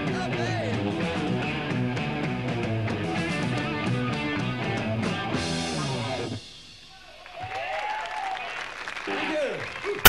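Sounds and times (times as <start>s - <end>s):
audience applauding and cheering: 7.2s - 10.0s.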